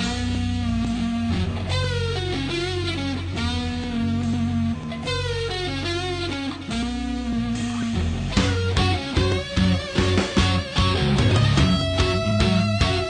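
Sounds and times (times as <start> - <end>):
electric guitar lead: 0.0 - 13.0
rock band playing live: 0.0 - 13.0.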